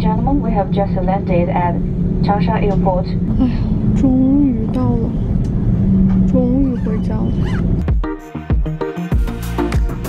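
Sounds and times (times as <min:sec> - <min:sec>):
woman's voice: 0:00.0 - 0:05.2, 0:06.2 - 0:07.5
airliner cabin rumble: 0:00.0 - 0:07.9
engine hum: 0:00.0 - 0:08.0.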